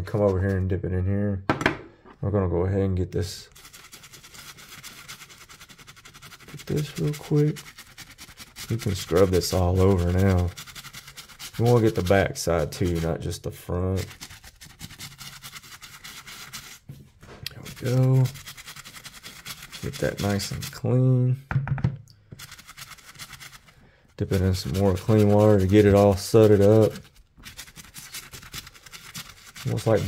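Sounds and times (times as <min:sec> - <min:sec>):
toothbrush scrubbing leather: 0:03.5 - 0:16.9, 0:17.5 - 0:20.9, 0:22.4 - 0:30.0.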